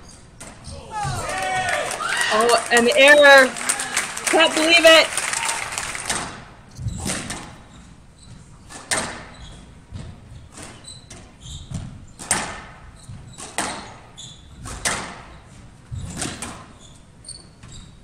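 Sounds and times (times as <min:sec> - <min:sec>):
squash ball hitting rackets and walls: 0:00.0 - 0:01.7, 0:06.1 - 0:17.9.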